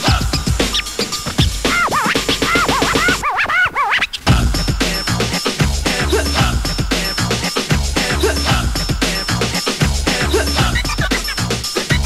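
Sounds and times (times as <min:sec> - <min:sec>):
electronic dance music: 0:00.0 - 0:03.2, 0:04.3 - 0:12.0
turntable scratching: 0:00.0 - 0:12.0.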